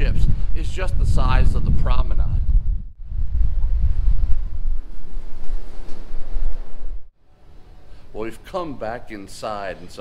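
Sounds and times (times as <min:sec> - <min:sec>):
wind buffeting microphone: 0:00.0 - 0:07.2.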